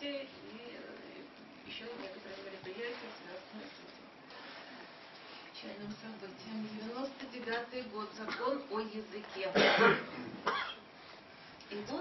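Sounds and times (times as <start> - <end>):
person coughing: 9.5 - 10.9.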